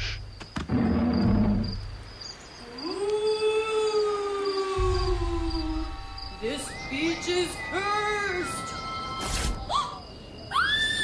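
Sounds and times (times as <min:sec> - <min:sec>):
crickets chirping: 0:00.0 - 0:11.0
low rumble: 0:04.8 - 0:07.6.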